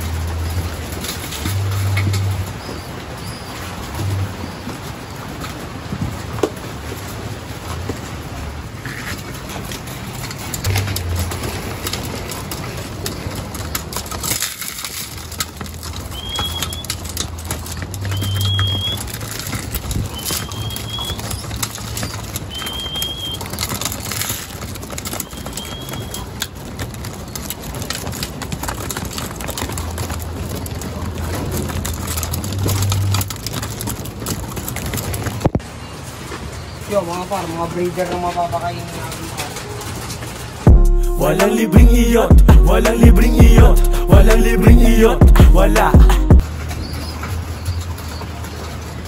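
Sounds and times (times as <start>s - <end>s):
wing flutters: 8.7s - 35.4s
pigeons cooing: 15.9s - 27.8s.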